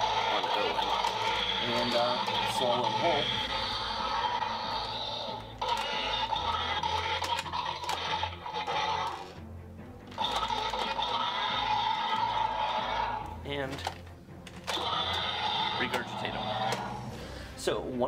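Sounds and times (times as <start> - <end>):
toy electronic roar: 0.0 - 9.4, 10.1 - 14.0, 14.6 - 17.1
plastic clicks: 13.7 - 15.2.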